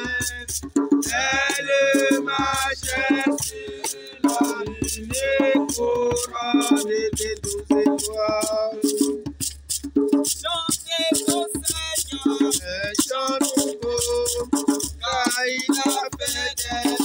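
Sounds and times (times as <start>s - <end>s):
voices singing: 0.0s - 9.1s, 10.4s - 17.0s
djembe hand drum: 0.0s - 17.0s.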